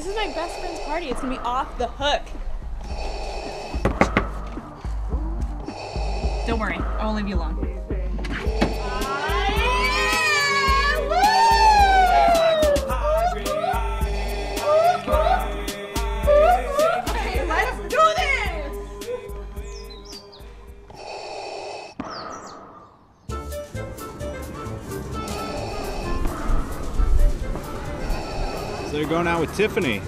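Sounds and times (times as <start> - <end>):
mechanical respirator breathing: 0.0 - 1.7, 2.6 - 7.3, 20.9 - 22.0, 25.2 - 27.2
background music with bass: 2.6 - 20.9, 23.3 - 30.0
woman squealing excitedly: 8.9 - 13.3.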